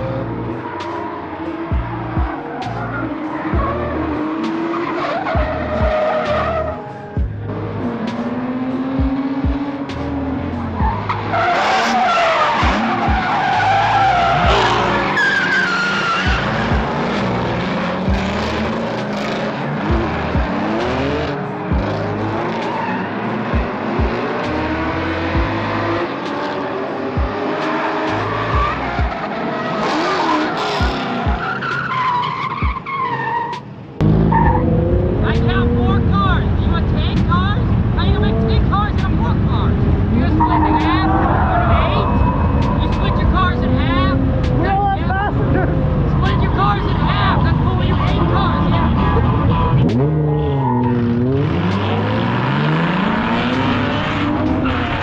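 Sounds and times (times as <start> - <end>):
car engine revving: 0.0 - 55.0
tyres squealing: 10.7 - 17.6, 40.1 - 55.0.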